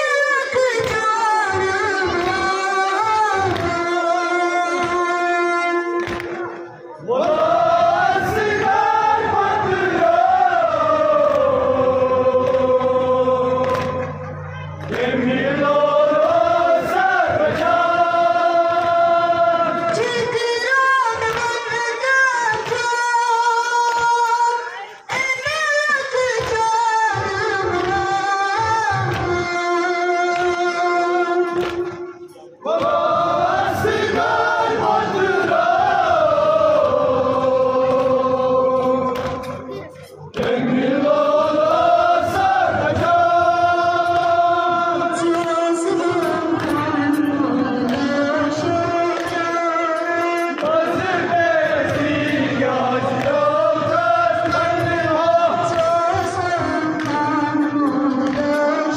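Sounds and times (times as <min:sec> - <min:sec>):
man singing a lament: 0:00.0 - 0:06.1, 0:15.0 - 0:31.6, 0:32.6 - 0:58.9.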